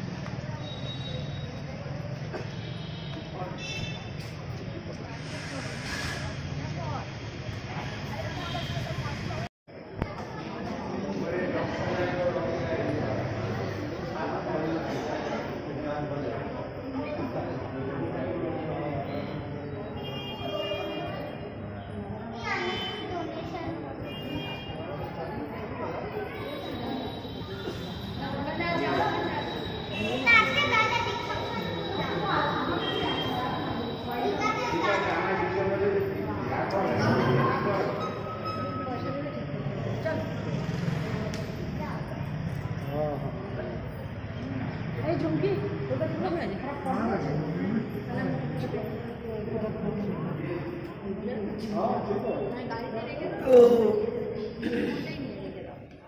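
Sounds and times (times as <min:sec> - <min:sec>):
outdoor background noise: 0:00.0 - 0:56.0
voices of people nearby: 0:00.0 - 0:56.0
short hiss: 0:05.1 - 0:06.4.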